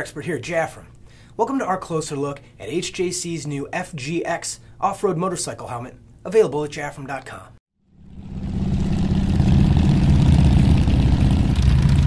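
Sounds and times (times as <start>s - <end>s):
engine running steadily: 8.0s - 12.0s.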